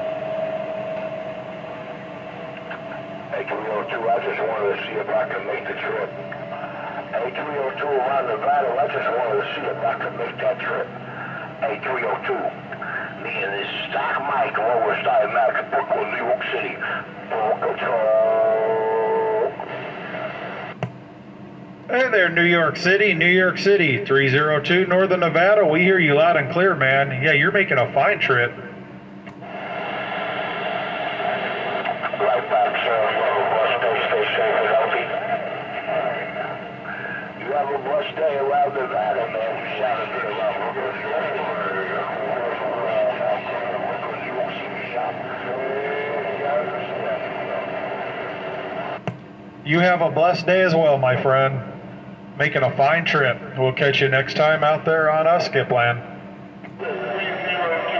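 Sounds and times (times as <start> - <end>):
buzzy radio tone: 0.0 - 20.8, 29.4 - 49.0, 49.6 - 57.9
radio band hiss: 0.0 - 20.9, 29.3 - 51.8, 52.4 - 57.9.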